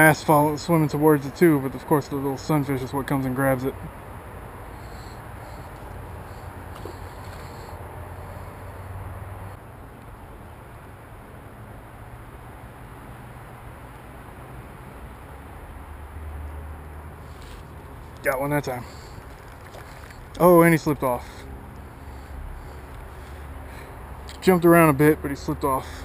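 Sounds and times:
outdoor low rumble: 3.8 - 11.2.

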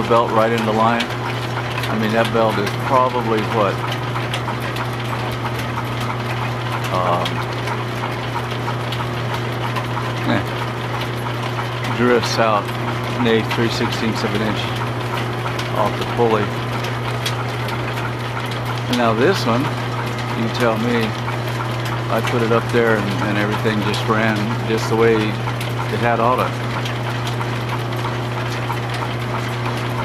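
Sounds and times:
belts running over pulleys: 0.0 - 30.0.

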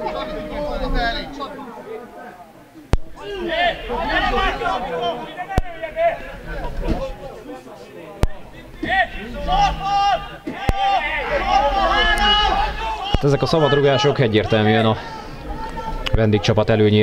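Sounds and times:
men talking and calling out: 0.0 - 17.0.

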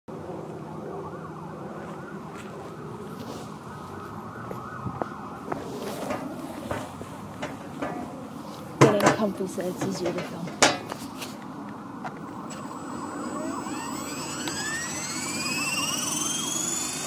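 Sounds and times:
siren wailing: 0.1 - 7.0, 11.0 - 17.0.

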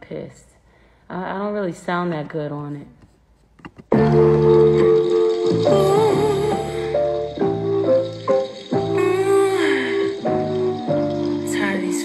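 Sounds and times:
held keyboard chords: 3.9 - 12.0
person singing gliding down: 5.5 - 7.6, 8.8 - 12.0.

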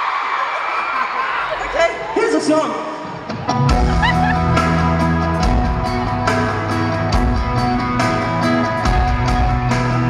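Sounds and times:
live pop-rock band playing: 2.8 - 10.0.

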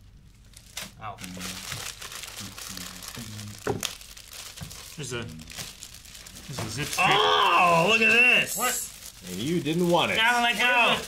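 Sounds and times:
sharp wrapping crackle: 0.1 - 11.0
package wrapping tearing and crinkling: 0.3 - 11.0.

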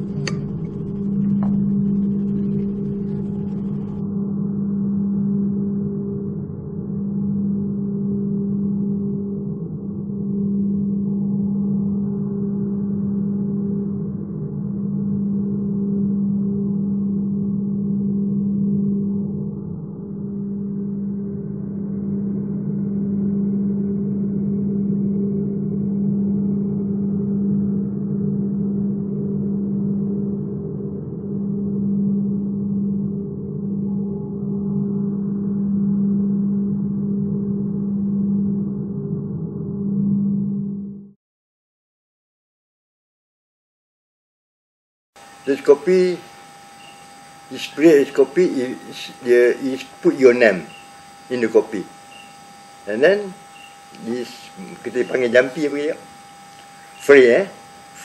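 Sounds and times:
low ambient drone: 0.0 - 41.1, 45.2 - 58.0.

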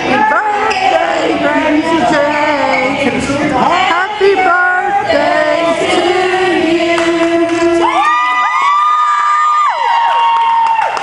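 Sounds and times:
group of voices singing: 0.0 - 8.5.

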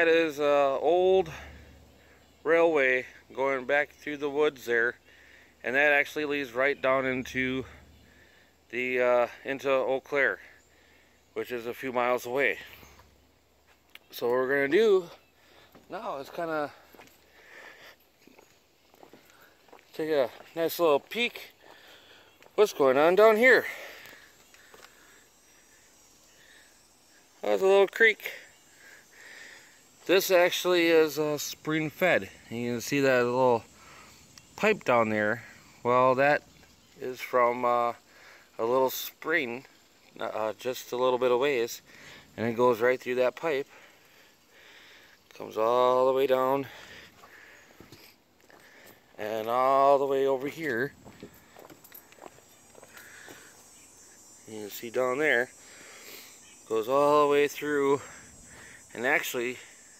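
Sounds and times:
faint steady hiss: 0.0 - 59.9.

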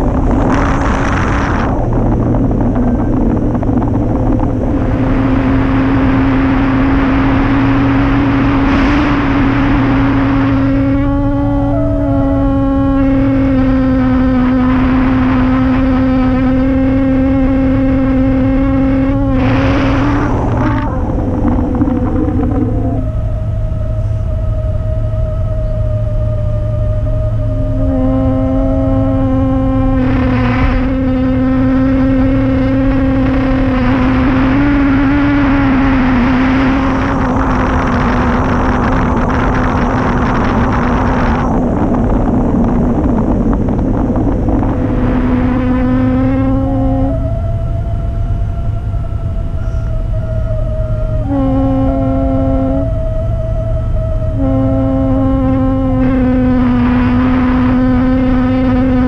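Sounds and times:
humming whistle: 0.0 - 59.0
wind rushing over camera: 0.0 - 59.0.

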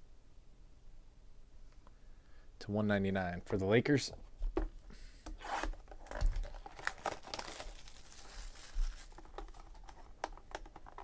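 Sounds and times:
box being handled: 4.4 - 11.0
shrink wrap crinkling and tearing: 5.5 - 11.0.

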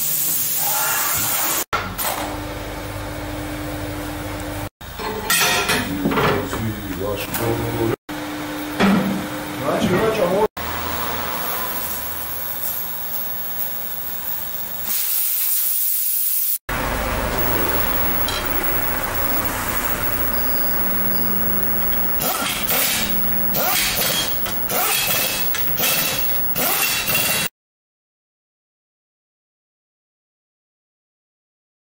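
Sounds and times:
steady mechanical hum: 16.7 - 26.7
air tools hissing and rattling: 20.8 - 27.5.

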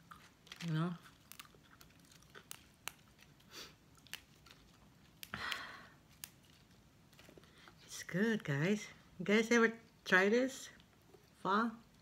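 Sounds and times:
basil leaves snapping: 0.4 - 7.3.

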